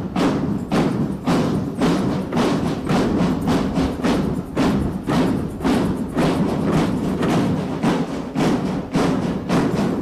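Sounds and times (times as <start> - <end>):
drum band marching beat: 0.0 - 10.0.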